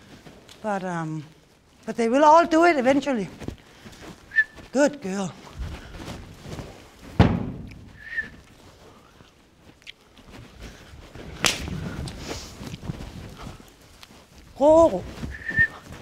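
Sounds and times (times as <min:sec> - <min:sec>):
horse galloping on soft ground: 0:00.0 - 0:16.0
sharp cracks: 0:11.4 - 0:11.8.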